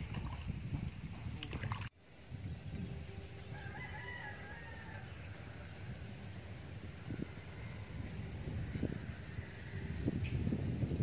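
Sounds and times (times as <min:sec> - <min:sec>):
insects trilling: 0:02.0 - 0:11.0
rooster crowing: 0:03.4 - 0:05.9.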